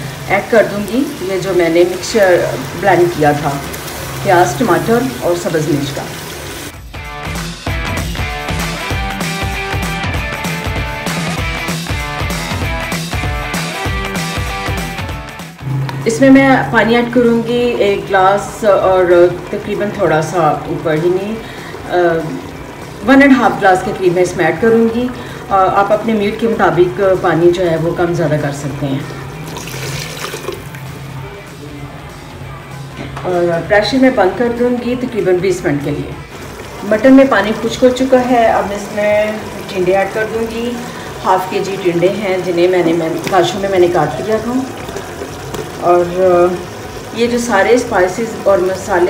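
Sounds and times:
meat sizzling in oil: 0.0 - 15.4, 29.2 - 30.8, 36.2 - 49.0
background music: 0.0 - 49.0
water splashing into pot: 29.2 - 30.9, 36.2 - 49.0.

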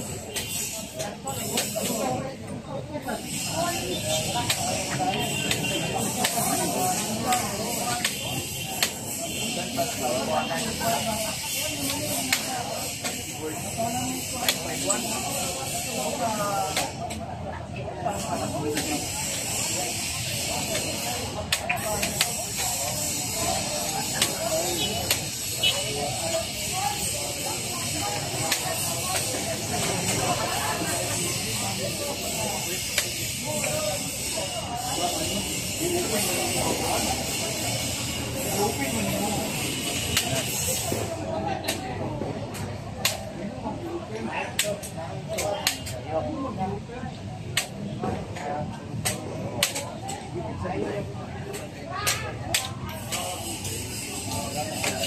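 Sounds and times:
men chatting: 1.0 - 15.2.

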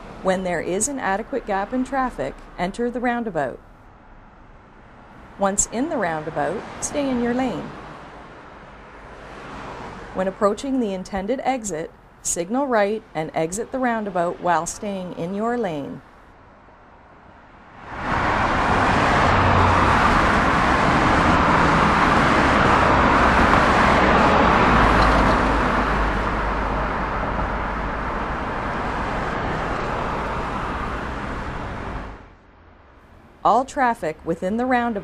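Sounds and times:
road traffic noise: 0.0 - 35.0.

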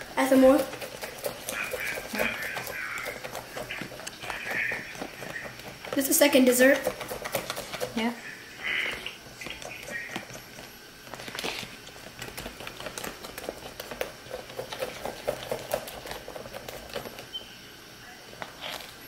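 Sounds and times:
low voices: 1.4 - 5.7.

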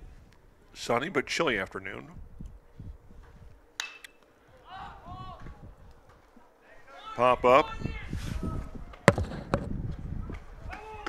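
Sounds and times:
metal bat cracking ball: 3.8 - 4.2, 9.1 - 9.7
distant voices shouting: 4.3 - 9.1, 10.5 - 11.0.

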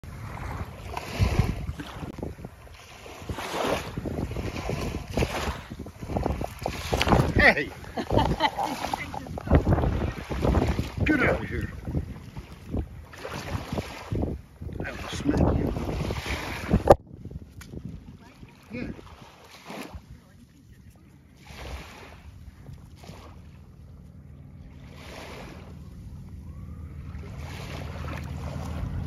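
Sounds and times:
wind buffeting microphone: 0.0 - 24.0, 24.6 - 29.0
small waves washing onto beach: 0.0 - 29.0.

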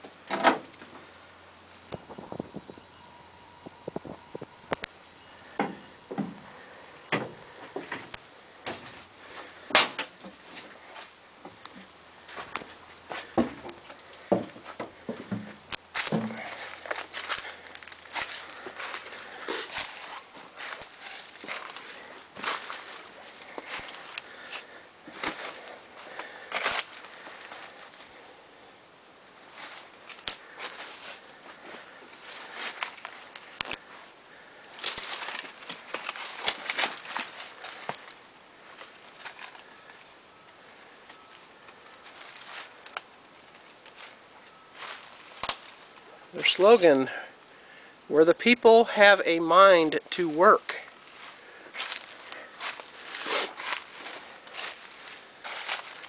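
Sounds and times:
footsteps through dry leaves: 15.9 - 28.2, 29.4 - 34.1, 34.8 - 39.7, 42.0 - 42.9, 50.9 - 56.0.

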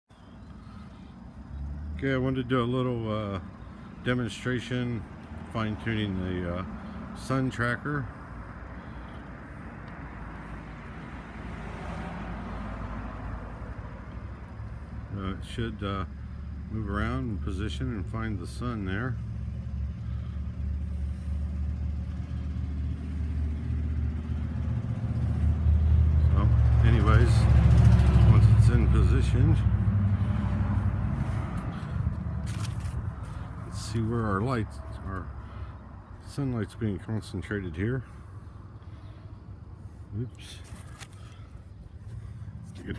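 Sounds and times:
distant road traffic: 0.0 - 42.9
vehicle engine rumble: 0.0 - 42.9
phone handling rustles: 32.4 - 33.1, 40.6 - 41.4.

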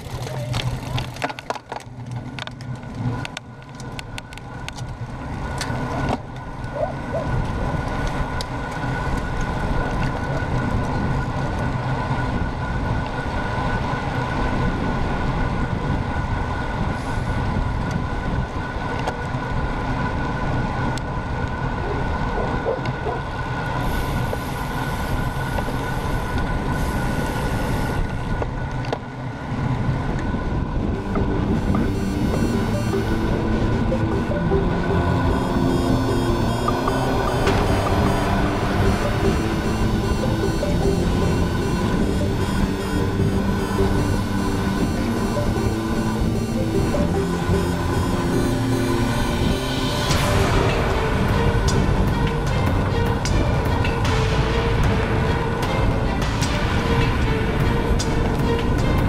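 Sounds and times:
faint steady whine: 0.0 - 59.0
wind rumble on camera: 0.0 - 59.0.

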